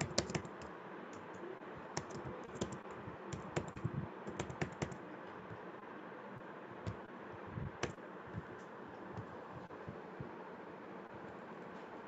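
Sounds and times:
computer keyboard typing: 0.0 - 5.0, 7.7 - 8.5.

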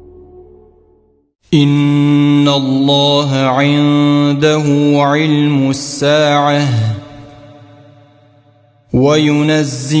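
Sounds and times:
chanted recitation with echo: 1.5 - 10.0.

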